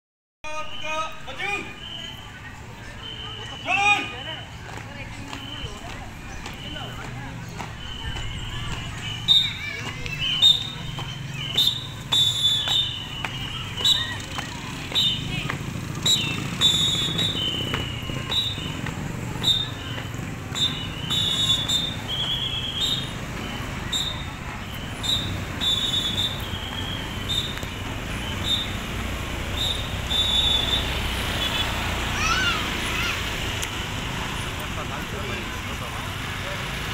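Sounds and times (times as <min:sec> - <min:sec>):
street noise: 0:00.4 - 0:36.9
sharp whistle blasts: 0:00.5 - 0:04.5, 0:05.3 - 0:14.2, 0:14.9 - 0:15.3, 0:16.0 - 0:31.8.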